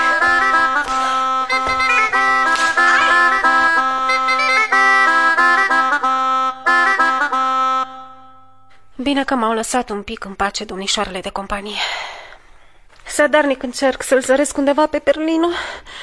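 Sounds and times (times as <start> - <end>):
bagpipe dance tune: 0.0 - 8.7
bagpipe drone: 0.0 - 8.7.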